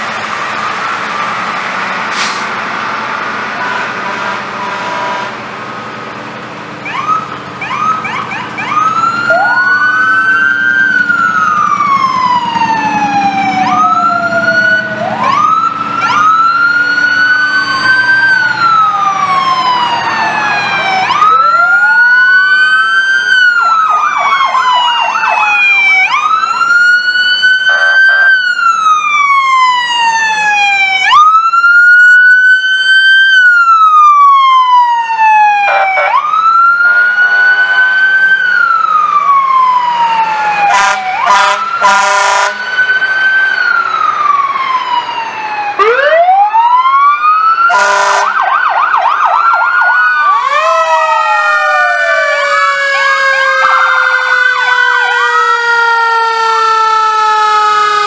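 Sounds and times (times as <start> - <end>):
emergency sirens wailing: 0.0 - 58.0
siren yelping bursts: 39.3 - 52.7.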